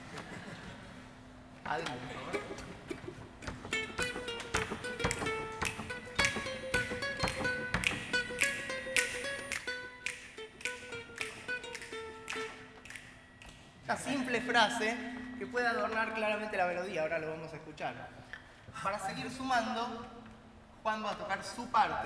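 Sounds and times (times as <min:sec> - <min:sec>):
ukulele plucking notes: 0:02.2 - 0:16.4.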